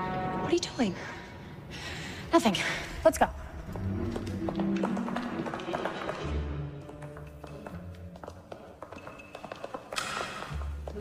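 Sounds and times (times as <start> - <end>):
tense film score: 0.0 - 11.0
shoes running on marble floor: 3.7 - 11.0.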